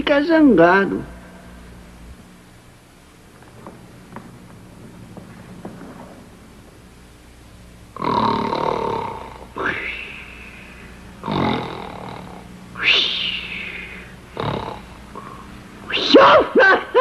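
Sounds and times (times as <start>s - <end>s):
exaggerated comedy snoring: 7.9s - 15.6s.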